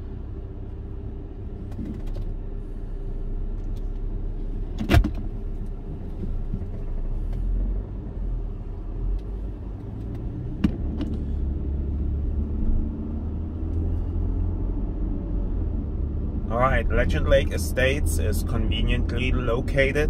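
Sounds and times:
car engine and tyre rumble: 0:00.0 - 0:20.0.

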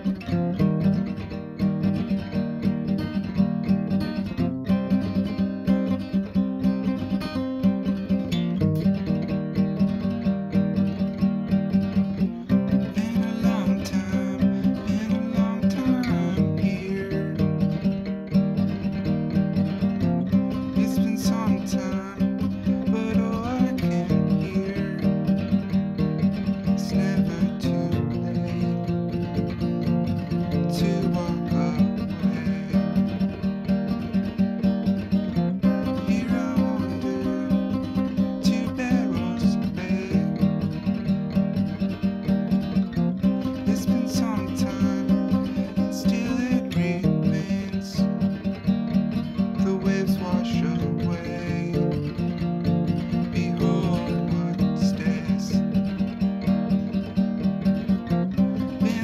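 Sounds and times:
acoustic guitar strumming: 0:00.0 - 0:59.0
man singing: 0:12.1 - 0:18.2, 0:19.7 - 0:34.5, 0:35.4 - 0:41.4, 0:43.2 - 0:56.1, 0:58.4 - 0:59.0.

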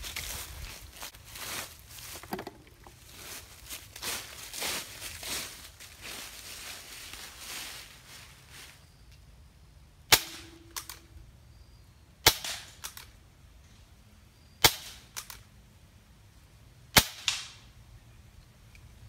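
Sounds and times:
air pistol shots: 0:10.1 - 0:11.1, 0:12.2 - 0:13.1, 0:14.6 - 0:15.4, 0:16.9 - 0:17.6.

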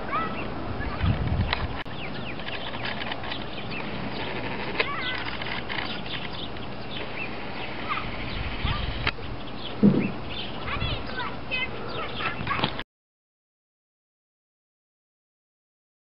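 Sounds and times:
high bird chirps: 0:01.9 - 0:12.6
brief low thud: 0:09.8 - 0:10.2.

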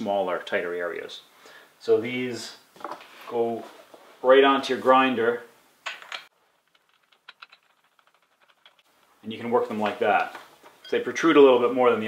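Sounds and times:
faint metallic clicks and rattles: 0:05.9 - 0:09.3.

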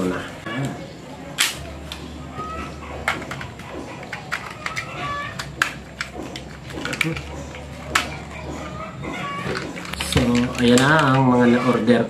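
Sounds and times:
steady low hum: 0:00.0 - 0:12.0
plastic toy clicks and knocks: 0:03.0 - 0:08.7, 0:09.4 - 0:11.3.

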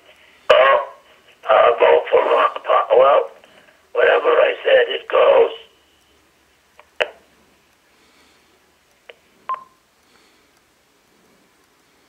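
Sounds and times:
short beep: 0:09.5 - 0:09.8.

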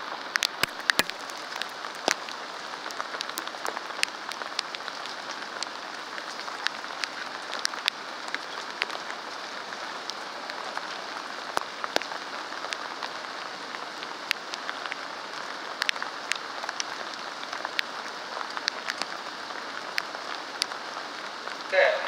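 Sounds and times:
raindrops ticking close by: 0:00.0 - 0:22.0
steady rain falling: 0:00.0 - 0:22.0.

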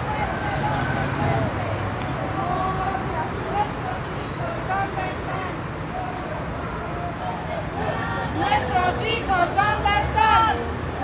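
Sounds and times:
city traffic rumble: 0:00.0 - 0:11.0
crowd voices: 0:00.0 - 0:11.0.

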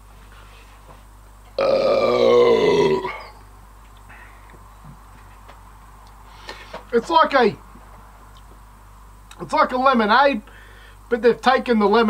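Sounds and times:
long burp: 0:01.6 - 0:03.4.

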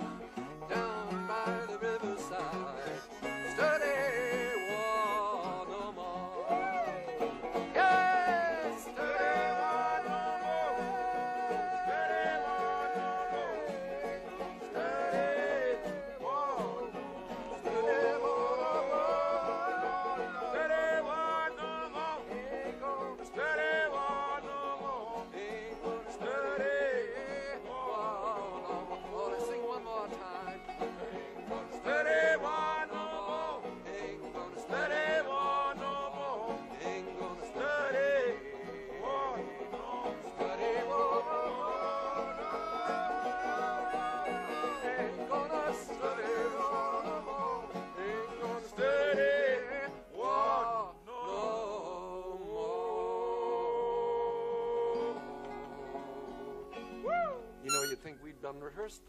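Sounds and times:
harmonica melody: 0:00.0 - 0:26.6, 0:27.2 - 0:37.8, 0:38.6 - 0:48.6, 0:55.0 - 0:58.2
acoustic guitar accompaniment: 0:00.0 - 0:51.1, 0:53.6 - 0:59.0.

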